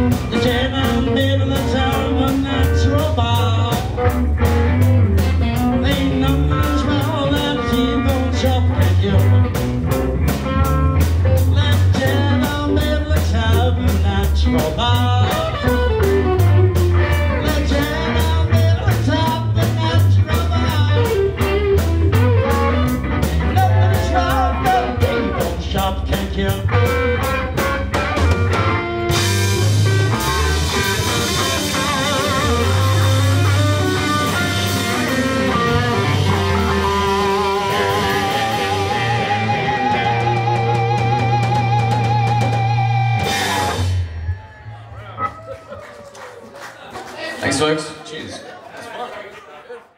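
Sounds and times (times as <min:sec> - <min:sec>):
drums keeping steady beat: 0:00.0 - 0:45.3
electric guitar with bent notes: 0:00.0 - 0:45.8
bass guitar: 0:00.0 - 0:46.3.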